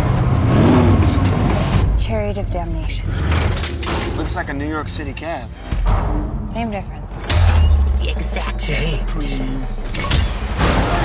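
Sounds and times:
car engine revving: 0:00.0 - 0:11.0.

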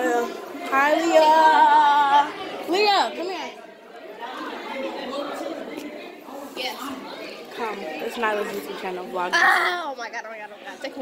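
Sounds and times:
children chattering: 0:00.0 - 0:11.0.

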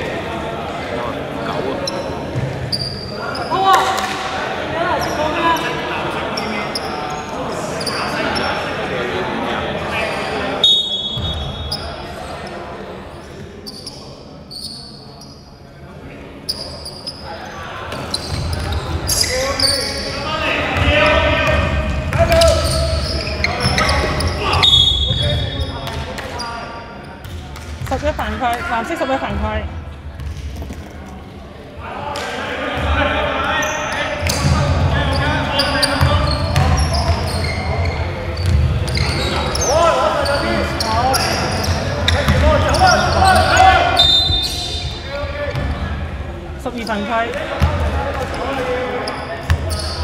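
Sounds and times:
shoe squeaks: 0:01.8 - 0:03.8, 0:04.9 - 0:08.7, 0:10.1 - 0:15.6, 0:16.4 - 0:20.3, 0:22.4 - 0:27.3, 0:33.5 - 0:45.7, 0:48.2 - 0:50.0
players calling out: 0:16.4 - 0:26.8, 0:31.8 - 0:50.0.

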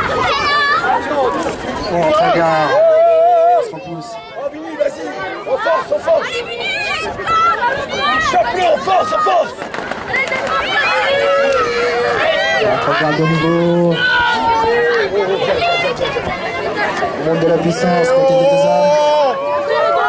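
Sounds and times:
spectators shouting and chattering: 0:00.0 - 0:20.0.

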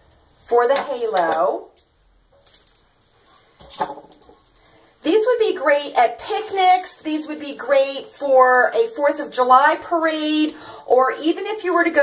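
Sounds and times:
ribbon spools handled on countertop: 0:03.6 - 0:04.7.

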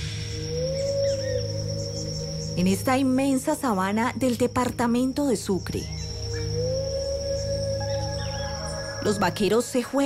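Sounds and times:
low ambient drone music: 0:00.0 - 0:10.0.

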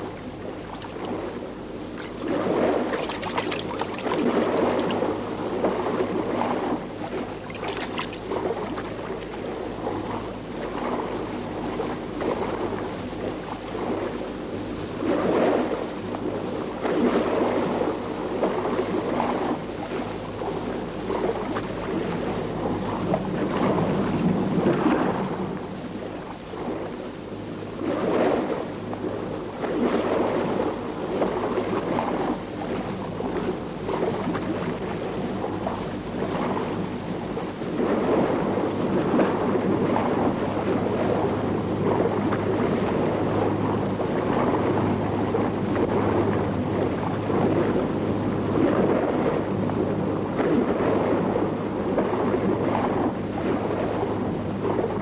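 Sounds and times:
waves breaking: 0:00.0 - 0:55.0
wind: 0:00.0 - 0:55.0.

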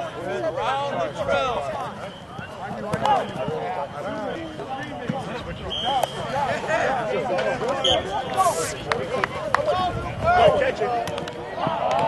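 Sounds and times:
group chatter: 0:00.0 - 0:12.0.

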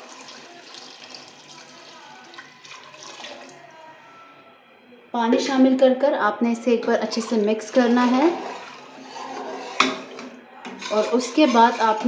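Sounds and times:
spoon stirring watery food: 0:00.0 - 0:03.7, 0:07.0 - 0:12.0
spoon clanking against pot: 0:07.1 - 0:12.0.

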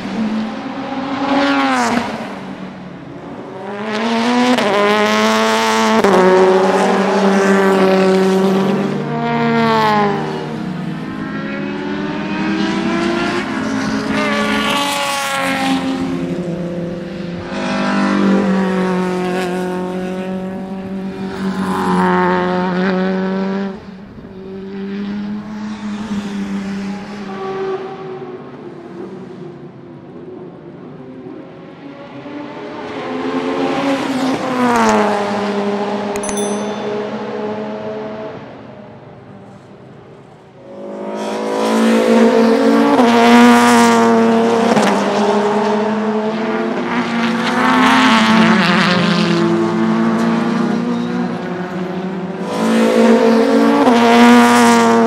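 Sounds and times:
race car passing by: 0:40.7 - 0:55.0.

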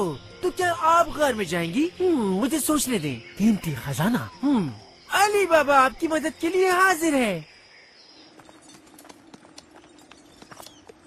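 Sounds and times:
clip-clop of hooves: 0:08.2 - 0:11.0.

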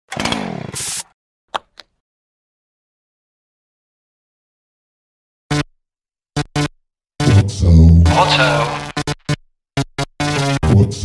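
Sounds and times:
hiss: 0:00.8 - 0:01.0.

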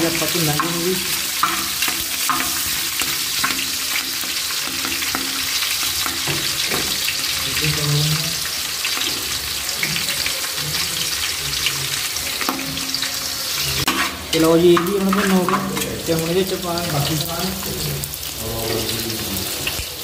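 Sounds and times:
chillies sizzling in hot oil: 0:00.0 - 0:20.0
metal spoon scraping pot: 0:10.7 - 0:16.2.

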